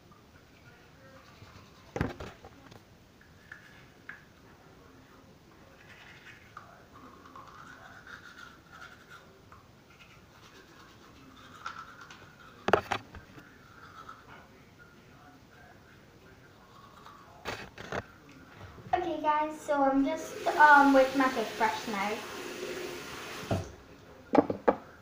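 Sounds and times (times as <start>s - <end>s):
toothbrush scrubbing teeth: 0.4s - 2.0s, 3.2s - 4.0s, 5.7s - 14.6s, 16.5s - 17.8s, 20.2s - 23.3s.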